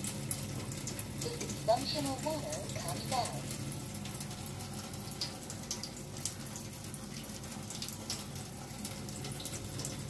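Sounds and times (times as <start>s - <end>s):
low steady hum: 0.0s - 10.0s
water pouring into a sink: 0.0s - 10.0s.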